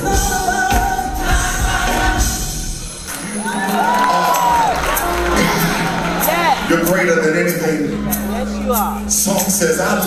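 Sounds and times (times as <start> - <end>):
gospel choir singing: 0.0 - 7.1.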